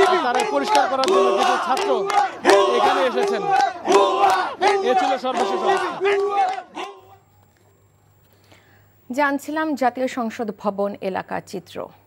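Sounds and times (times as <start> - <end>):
crowd of men shouting and chanting: 0.0 - 7.2.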